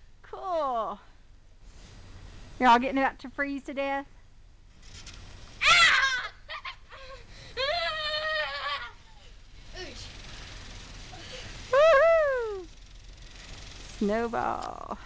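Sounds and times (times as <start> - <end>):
girls squealing with laughter: 5.6 - 9.3.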